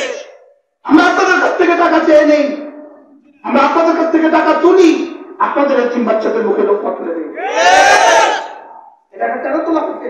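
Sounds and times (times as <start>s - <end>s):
crowd of men shouting: 7.4s - 8.7s.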